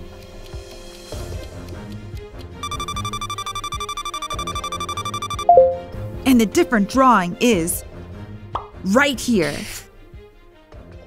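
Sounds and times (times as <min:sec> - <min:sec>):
background music: 0:00.0 - 0:11.0
rapidly pulsing electronic beep: 0:02.6 - 0:05.8.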